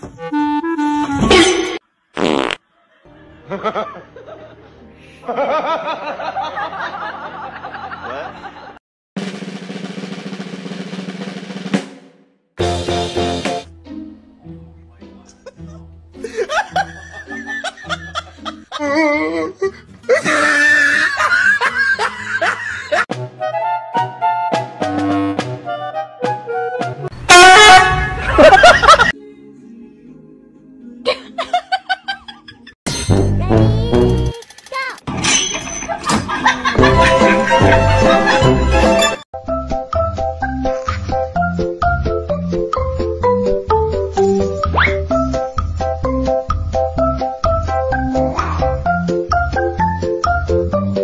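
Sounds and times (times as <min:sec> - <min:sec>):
fart sound effect: 0:01.1 - 0:02.6.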